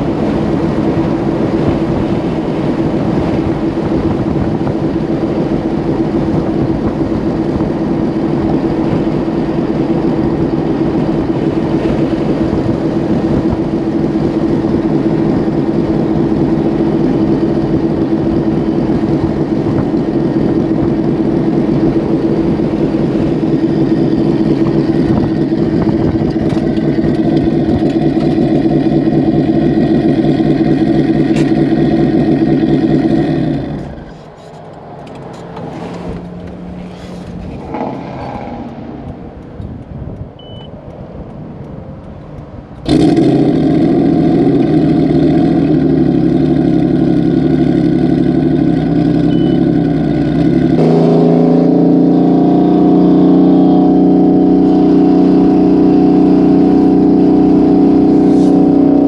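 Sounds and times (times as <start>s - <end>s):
car engine from inside cabin: 0.0s - 59.0s.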